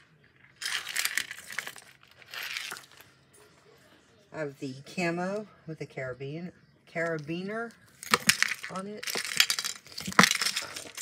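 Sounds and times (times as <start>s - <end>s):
plastic rustling: 0.4s - 3.2s, 7.9s - 11.0s.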